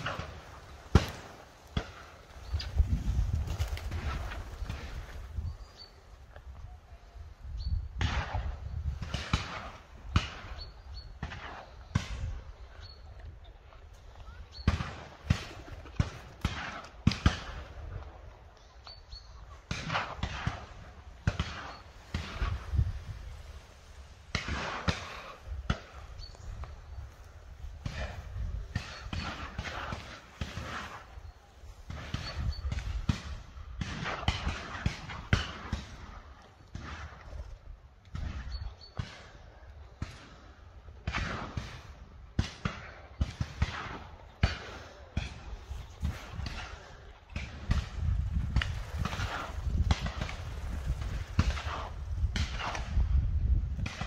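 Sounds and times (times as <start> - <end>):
shotgun shots: 0.0 - 2.2, 8.0 - 12.4, 14.6 - 17.8, 19.7 - 23.5, 24.2 - 26.1, 27.8 - 31.2, 31.8 - 37.2, 40.0 - 53.2.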